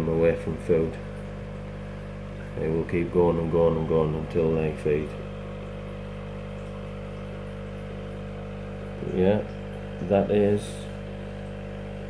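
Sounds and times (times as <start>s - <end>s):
aquarium air pump humming: 0.0s - 12.0s.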